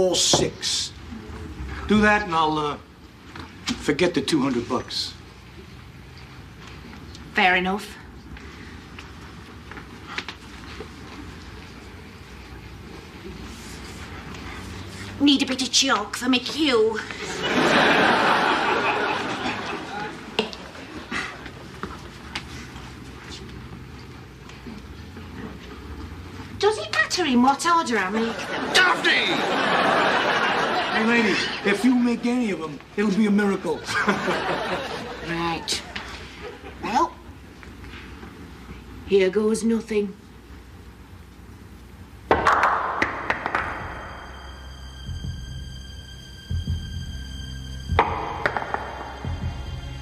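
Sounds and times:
billiard balls clacking: 42.3s - 44.2s, 48.0s - 49.5s
cue ball crack: 42.3s - 44.2s, 48.0s - 49.4s.

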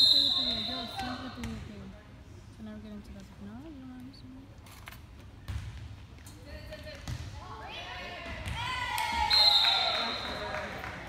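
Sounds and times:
volleyball hits: 6.6s - 10.6s.

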